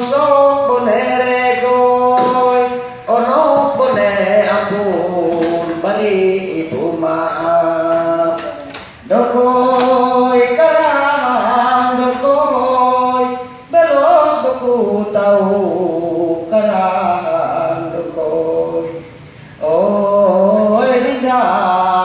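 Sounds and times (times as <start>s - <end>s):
man singing unaccompanied: 0.0s - 22.0s
singer breathing: 19.2s - 19.6s.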